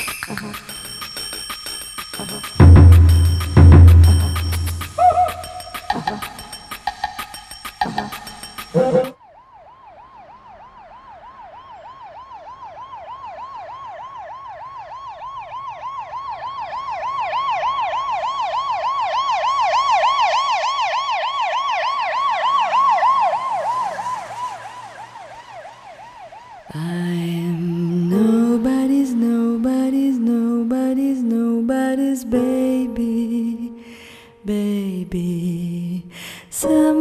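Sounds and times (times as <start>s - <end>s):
pitched music: 0.0s - 9.2s
electronic warbling siren tone: 2.2s - 9.2s, 21.8s - 28.4s.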